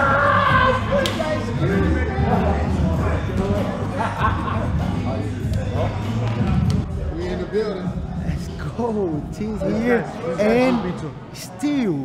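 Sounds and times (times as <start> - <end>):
background music with bass: 0.0 - 10.5
men laughing: 3.6 - 5.2
men talking: 6.8 - 12.0.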